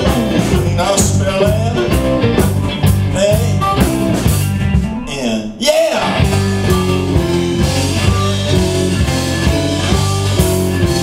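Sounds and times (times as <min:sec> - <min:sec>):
drum kit beat: 0:00.0 - 0:11.0
electric bass: 0:00.0 - 0:11.0
electric guitar: 0:00.0 - 0:11.0.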